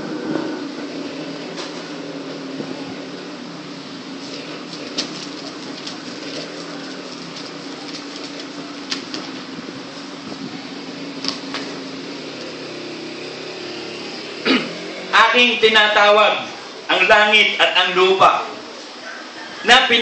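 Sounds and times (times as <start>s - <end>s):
electric fan humming: 0.0s - 20.0s.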